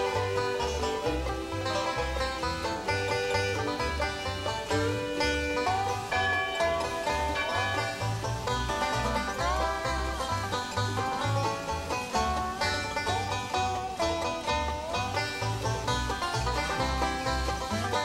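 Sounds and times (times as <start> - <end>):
bluegrass banjo music: 0.0 - 18.0
steady bass notes: 0.0 - 18.0.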